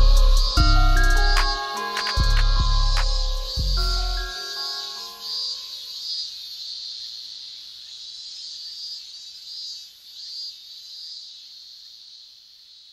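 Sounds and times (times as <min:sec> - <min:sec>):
cicadas buzzing: 0:00.0 - 0:12.9.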